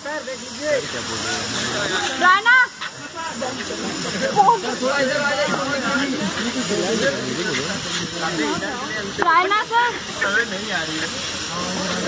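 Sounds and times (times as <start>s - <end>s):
overlapping voices talking: 0.0s - 12.0s
steady hiss: 0.0s - 12.0s.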